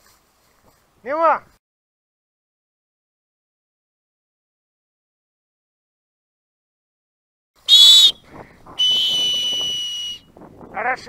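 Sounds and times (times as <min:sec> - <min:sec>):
dog whistle blasts: 0:07.7 - 0:08.2, 0:08.8 - 0:10.3.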